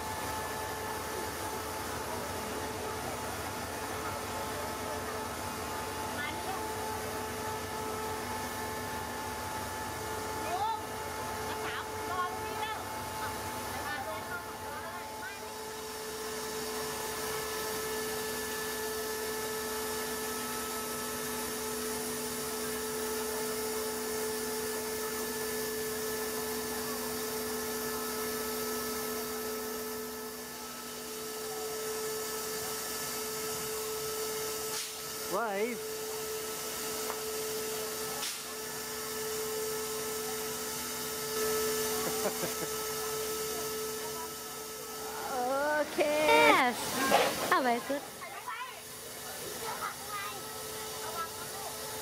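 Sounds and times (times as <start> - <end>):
steam locomotive machinery whine: 0.0 - 52.0
person laughing: 42.0 - 42.7
person speaking: 45.3 - 48.0.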